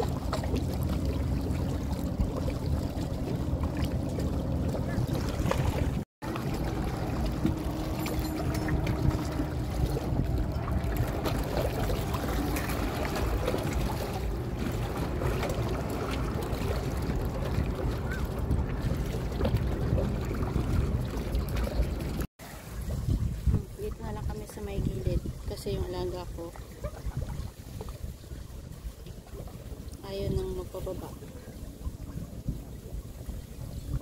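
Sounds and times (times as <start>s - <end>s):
waves lapping against rocks: 0.0s - 34.0s
wind buffeting microphone: 0.0s - 34.0s.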